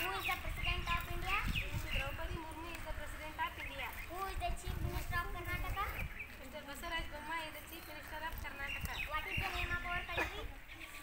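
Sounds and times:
child speaking: 0.0s - 11.0s.

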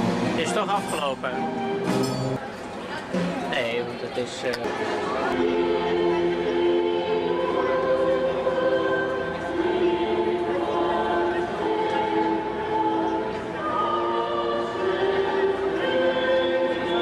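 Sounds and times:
choir singing held notes: 4.6s - 17.0s.

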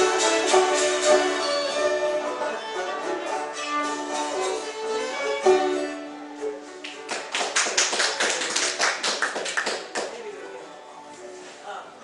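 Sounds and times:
fiddle note: 0.0s - 6.8s
small audience clapping: 6.6s - 10.4s.

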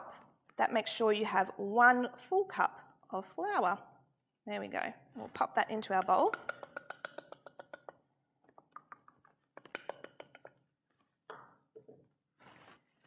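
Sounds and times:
metal cup tapping glass bowl: 5.8s - 7.9s
soft rustles: 12.4s - 13.0s.

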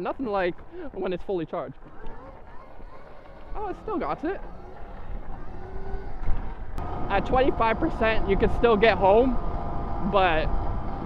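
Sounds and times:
electric motor whine: 1.9s - 11.0s
wind rumble on microphone: 3.9s - 11.0s.

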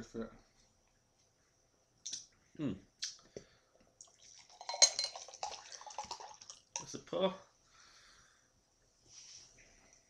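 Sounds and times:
cider pouring into a glass: 4.0s - 7.0s
glass clinking against glass: 4.6s - 5.4s.

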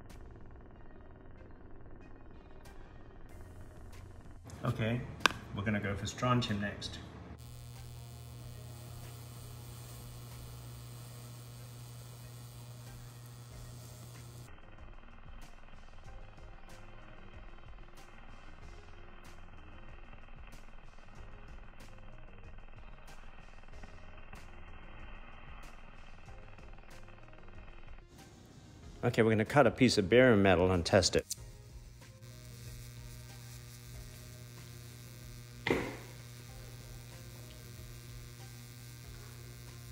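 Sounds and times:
plasma flame electrical hum: 0.0s - 39.9s.

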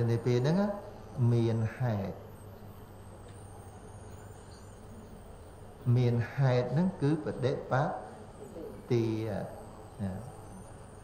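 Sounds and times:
man talking: 0.0s - 2.2s, 5.9s - 8.0s, 8.9s - 10.3s
faint background hum and hiss: 0.0s - 11.0s.

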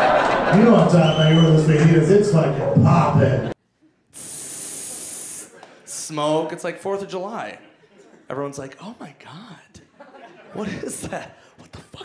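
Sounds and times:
man hissing into microphone: 4.1s - 5.6s.

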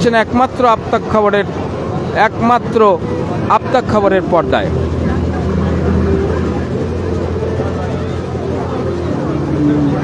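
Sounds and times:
engine droning: 0.0s - 10.0s
faint crowd voices: 0.0s - 10.0s.

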